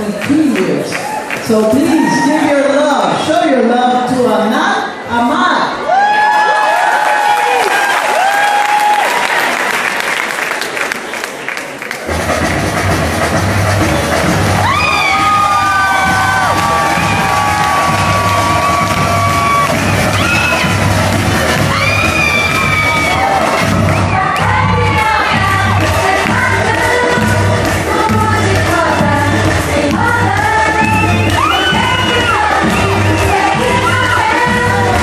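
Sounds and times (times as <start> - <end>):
audience cheering and whooping: 5.8 - 9.9, 14.4 - 25.8, 30.4 - 34.9
music with pulsing bass beat: 12.1 - 35.0
person singing: 22.9 - 35.0.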